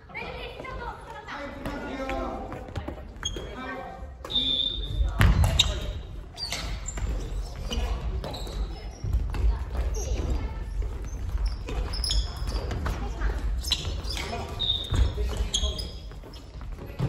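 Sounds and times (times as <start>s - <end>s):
voices in a hall: 0.0s - 17.0s
shoes squeaking: 1.7s - 17.0s.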